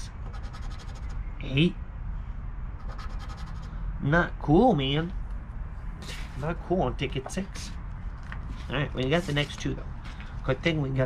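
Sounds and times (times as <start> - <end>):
scratching lottery ticket: 0.3 - 1.1, 2.8 - 3.7.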